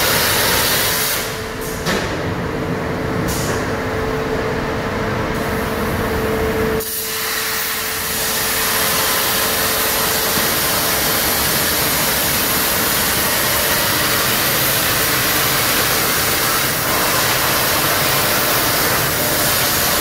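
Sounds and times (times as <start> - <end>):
plasma torch hissing: 6.8 - 20.0.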